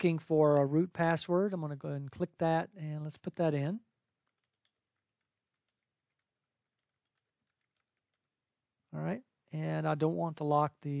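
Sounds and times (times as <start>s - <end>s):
keyboard typing: 4.0s - 8.6s.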